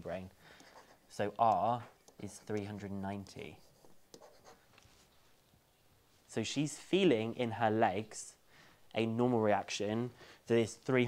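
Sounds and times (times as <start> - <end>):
stylus scratching on tablet: 0.5 - 4.8.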